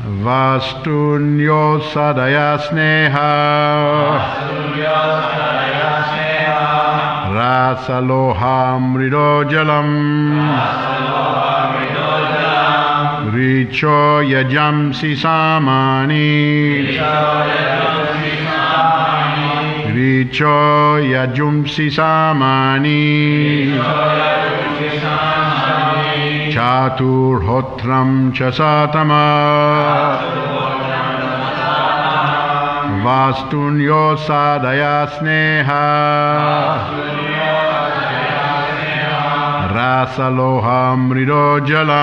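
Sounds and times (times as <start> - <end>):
group of voices chanting in unison: 1.8 - 42.0.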